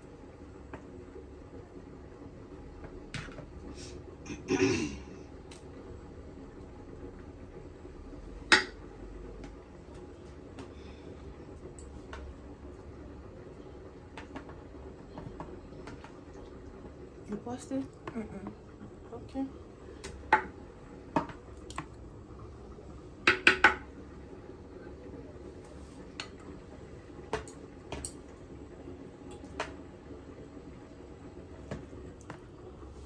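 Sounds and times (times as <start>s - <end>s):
faint low hum: 0.0s - 33.0s
metal spoon knocking on wooden mortar: 23.2s - 23.9s.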